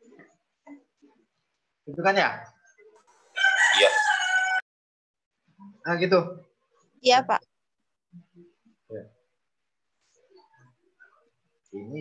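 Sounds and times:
rooster crowing: 0:03.4 - 0:04.6.

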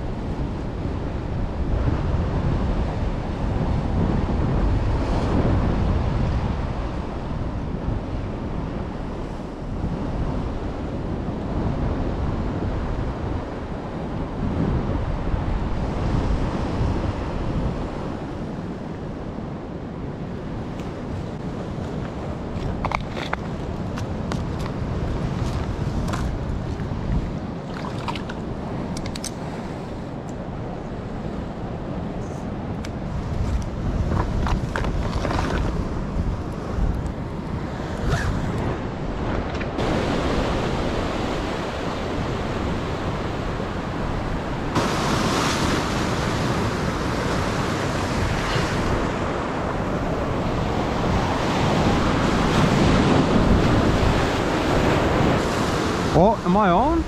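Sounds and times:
ocean surf washing over rocks: 0:00.0 - 0:57.0
wind on microphone: 0:00.0 - 0:57.0
clicks of tackle being handled: 0:28.0 - 0:29.4.

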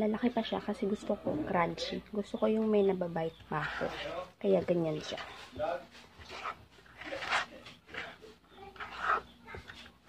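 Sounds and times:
spoon stirring sticky dough: 0:00.4 - 0:10.0.

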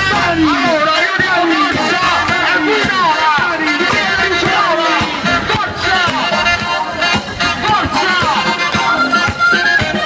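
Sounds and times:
electric guitar: 0:00.0 - 0:10.0
keyboard: 0:00.0 - 0:10.0
person singing: 0:00.0 - 0:10.0
saxophones: 0:00.0 - 0:10.0
steady drum beat: 0:00.0 - 0:10.0.

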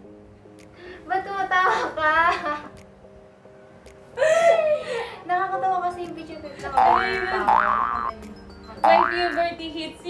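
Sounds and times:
soft background music: 0:00.0 - 0:10.0
cartoon boing: 0:06.8 - 0:08.1, 0:08.8 - 0:09.3.

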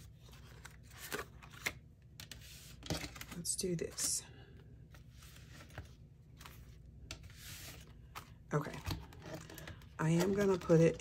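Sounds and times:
paper cards rustling: 0:00.0 - 0:04.2, 0:04.9 - 0:11.0.

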